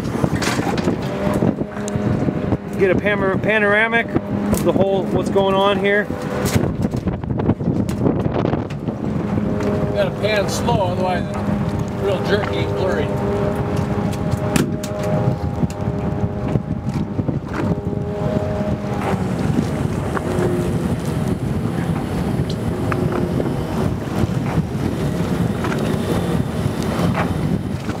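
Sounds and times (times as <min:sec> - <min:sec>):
boat engine drone: 0:00.0 - 0:28.0
wind buffeting microphone: 0:00.0 - 0:28.0.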